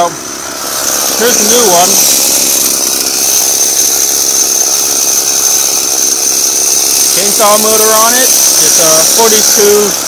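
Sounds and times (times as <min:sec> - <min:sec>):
two-stroke engine idling: 0:00.0 - 0:10.0.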